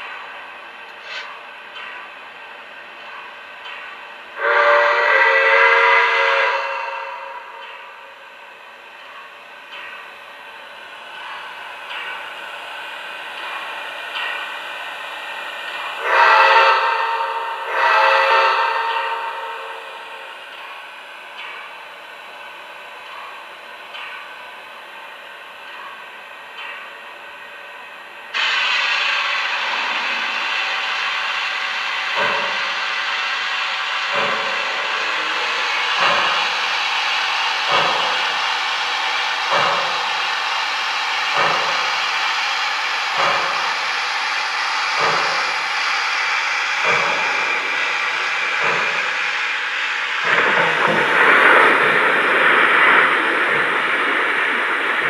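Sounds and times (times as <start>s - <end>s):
steady steam hiss: 0.0s - 55.0s
multi-tone steam whistle: 4.4s - 7.6s, 16.0s - 20.2s.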